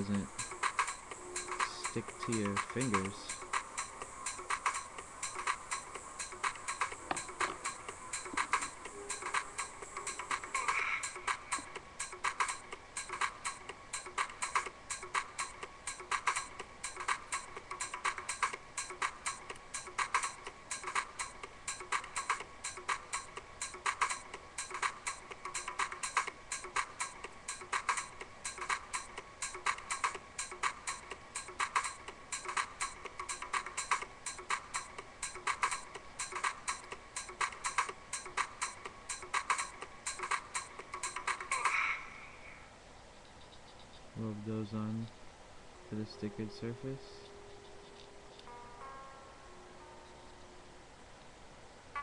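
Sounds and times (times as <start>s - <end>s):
fast sharp ticking: 0.0s - 41.7s.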